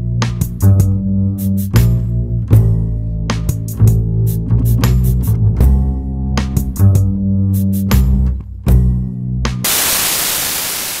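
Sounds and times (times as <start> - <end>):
music with bass and guitar: 0.0 - 9.7
static hiss: 9.6 - 11.0.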